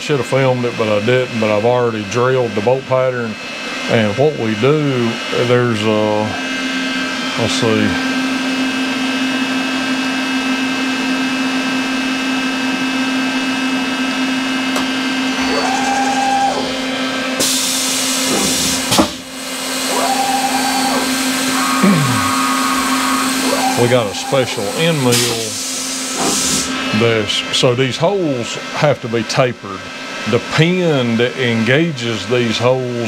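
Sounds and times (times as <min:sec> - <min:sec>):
milling machine motor hum: 0:00.0 - 0:28.8
hiss: 0:21.6 - 0:26.7.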